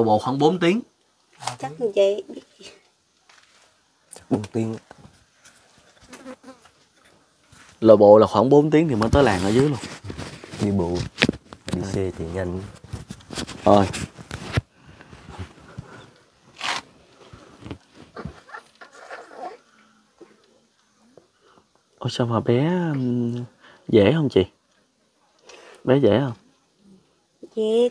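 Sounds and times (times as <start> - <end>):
flying insect buzzing: 6.0 - 6.8
man speaking: 7.8 - 9.9, 11.7 - 12.8
dog whimpering: 18.2 - 19.6.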